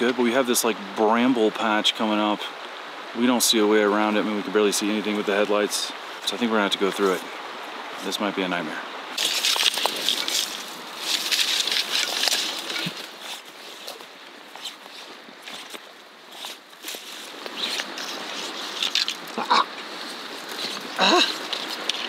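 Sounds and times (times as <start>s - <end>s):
branches rustling and scraping: 9.1s - 22.0s.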